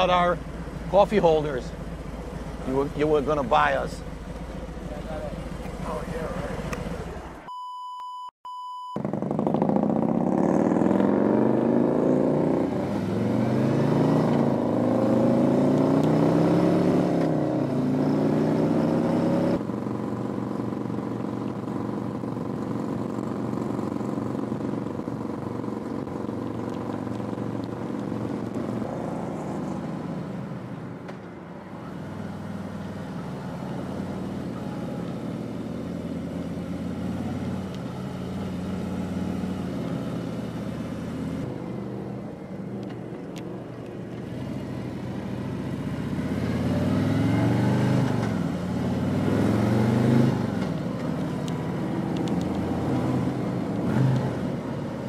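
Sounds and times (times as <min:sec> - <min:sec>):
short steady beep: 0:07.5 - 0:09.0
motorcycle accelerating through gears: 0:09.0 - 0:30.7, 0:31.9 - 0:41.6, 0:44.1 - 0:55.0.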